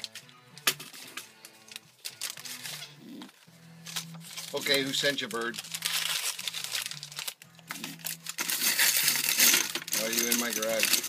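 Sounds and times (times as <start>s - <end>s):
crinkling and rustling: 0.0s - 11.0s.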